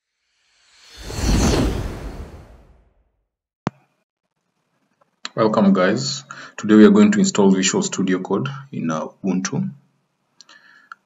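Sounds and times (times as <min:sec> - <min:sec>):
whoosh with deep rumble: 0:00.8 - 0:03.0.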